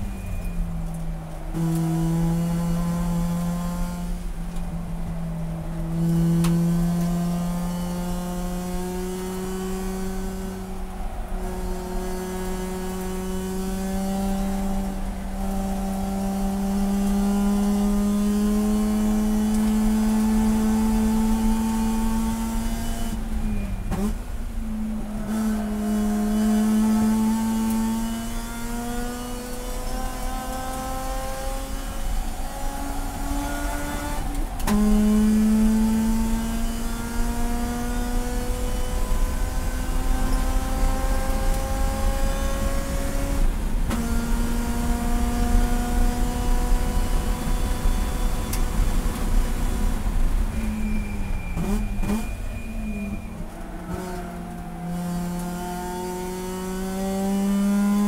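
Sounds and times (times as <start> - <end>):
race car engine revving: 0.9 - 4.4, 5.7 - 23.2, 23.9 - 58.0.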